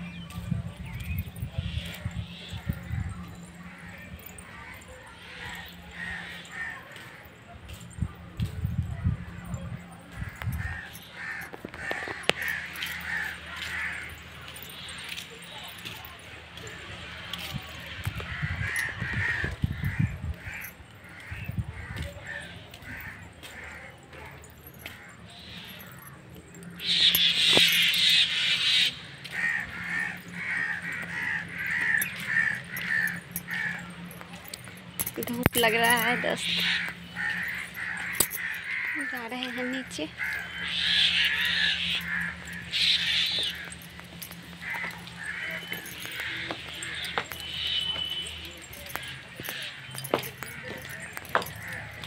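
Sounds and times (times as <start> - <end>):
birds calling: 0.0 - 52.0
crows cawing: 2.3 - 7.3, 10.2 - 15.2, 17.8 - 35.1, 35.8 - 52.0.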